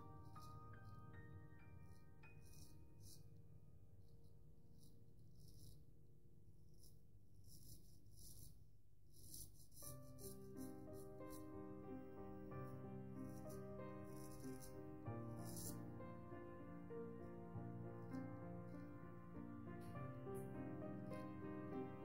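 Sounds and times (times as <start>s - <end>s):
faint keyboard background music: 0.0s - 5.8s, 9.2s - 22.0s
straight razor scraping stubble: 15.4s - 15.8s.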